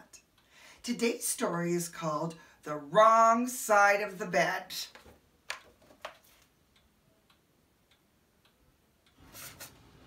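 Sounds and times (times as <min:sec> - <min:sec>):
faint regular ticking: 0:00.2 - 0:00.9, 0:06.6 - 0:09.2.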